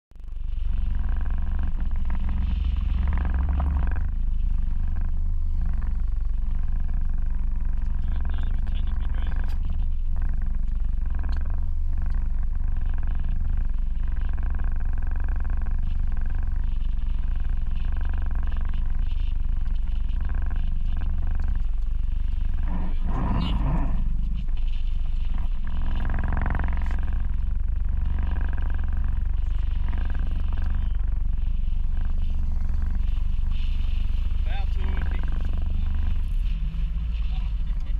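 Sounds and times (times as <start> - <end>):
wind buffeting microphone: 0.5 - 37.9
muffled voices: 5.0 - 11.5, 22.5 - 37.9.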